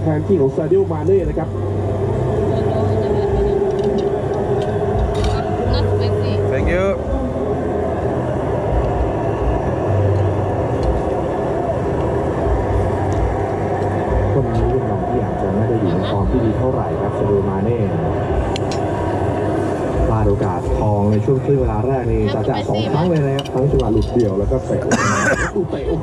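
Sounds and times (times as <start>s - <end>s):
indistinct chatter of voices: 0.0s - 26.0s
steady low hum: 0.0s - 26.0s.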